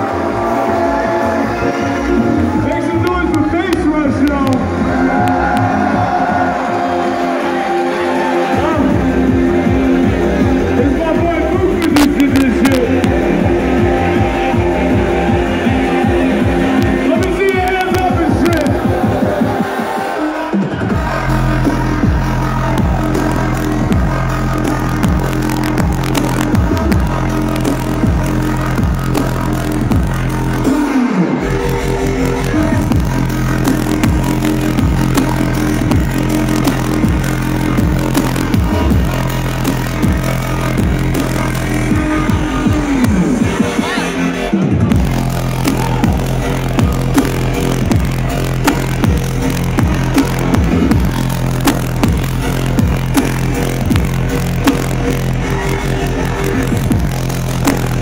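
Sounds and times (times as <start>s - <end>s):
bass-heavy electronic dance music: 0.0s - 58.0s.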